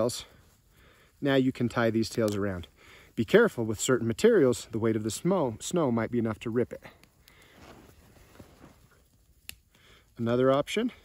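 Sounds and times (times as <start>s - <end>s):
cloth rustling: 7.4s - 9.0s.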